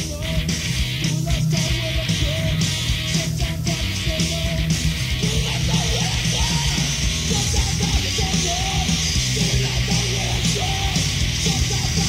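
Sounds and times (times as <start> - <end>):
punk band playing: 0.0 - 12.0.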